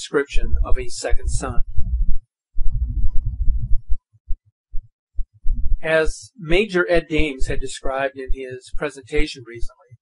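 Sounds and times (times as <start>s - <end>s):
low rumbling and thumping: 0.5s - 4.0s, 4.7s - 5.8s
short low thuds: 0.6s - 5.8s.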